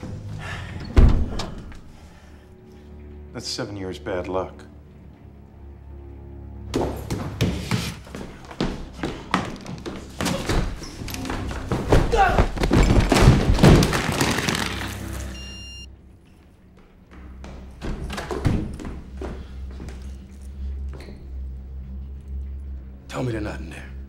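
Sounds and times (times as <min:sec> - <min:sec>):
tense music: 0:00.0 - 0:24.0
person crying out: 0:12.1 - 0:12.6.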